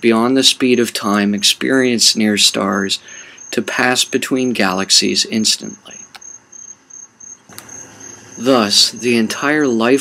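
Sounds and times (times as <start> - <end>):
person speaking: 0.0 - 6.2, 7.5 - 10.0.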